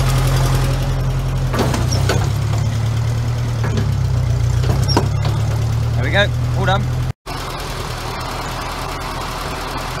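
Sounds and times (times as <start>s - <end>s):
tractor engine idling: 0.0s - 10.0s.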